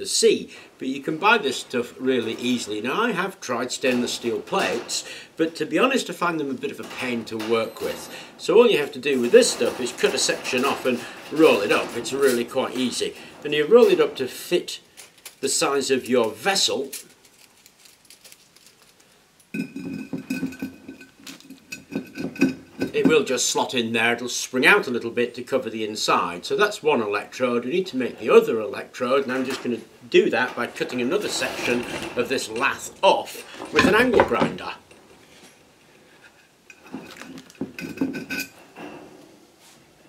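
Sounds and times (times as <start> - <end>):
metal mesh scraping against glass: 0.8 - 18.9, 27.8 - 39.1
glass jar ringing: 19.6 - 22.6.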